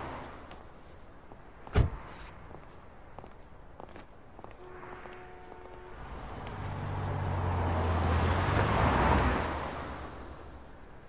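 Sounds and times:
footsteps on pavement: 0.3 - 5.8.

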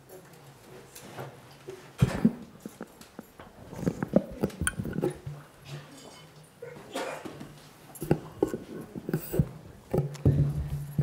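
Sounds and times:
taps and knocks on microphone: 9.2 - 11.0.

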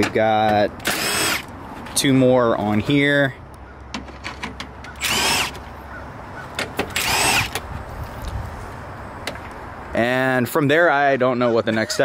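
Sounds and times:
cordless driver whining: 0.8 - 1.5, 4.9 - 5.6, 6.8 - 7.7.

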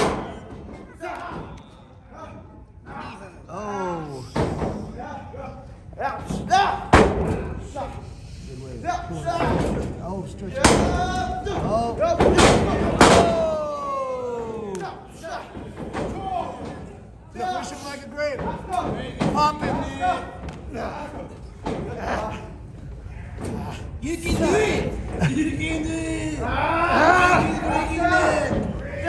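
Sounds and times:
voices shouting: 26.3 - 29.0.

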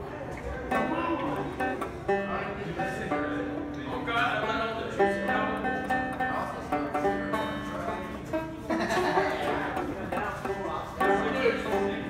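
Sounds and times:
banjo picking: 0.0 - 12.0.

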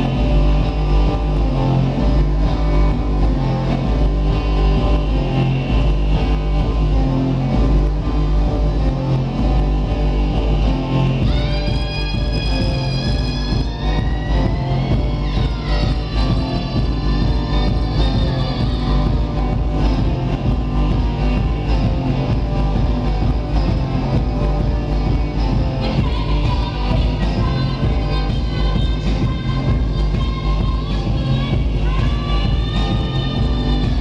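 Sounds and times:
electronic rock band playing: 0.0 - 34.0.

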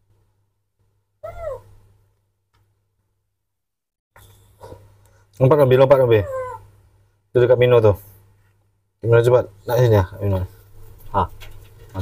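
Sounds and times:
baby monkey crying: 1.2 - 1.7, 6.0 - 6.7.

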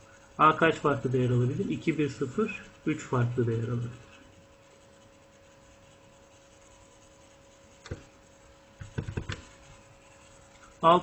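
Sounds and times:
low steady hum: 0.0 - 11.0
stylus scratching on tablet: 0.0 - 11.0.

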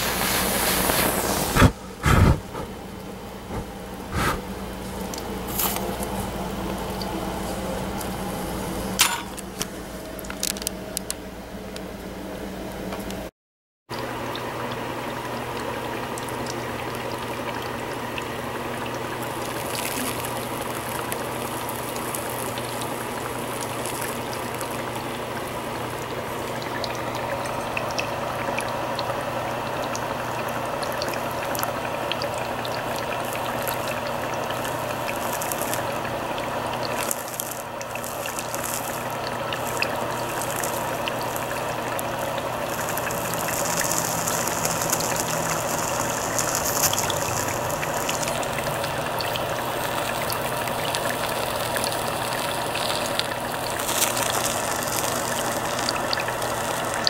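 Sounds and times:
torch flame hissing: 0.0 - 2.8, 3.4 - 6.0, 33.2 - 36.0, 36.9 - 57.0
steady low hum: 0.0 - 13.3
water bubbling and gurgling: 14.0 - 57.0.

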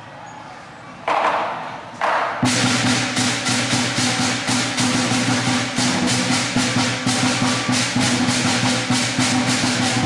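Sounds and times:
cymbals clashing: 2.4 - 10.0
large drum beating: 2.4 - 10.0.

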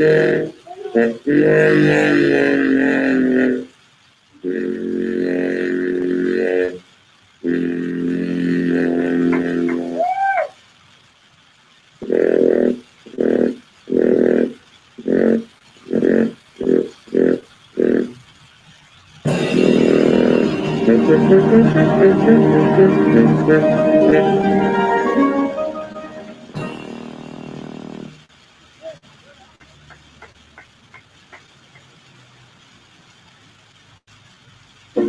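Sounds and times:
man chanting without words: 0.0 - 3.7.

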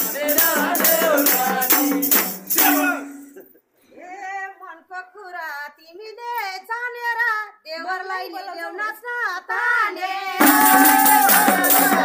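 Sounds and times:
women singing unaccompanied: 0.0 - 3.1, 4.0 - 12.0.

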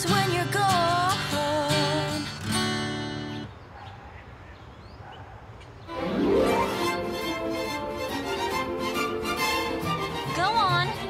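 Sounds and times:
acoustic guitar: 0.0 - 3.5, 5.9 - 11.0.

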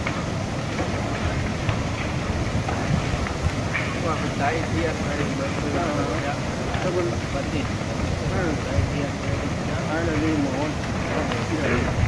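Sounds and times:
burning timber crackling: 0.0 - 12.0
low rumble of fire: 0.0 - 12.0.

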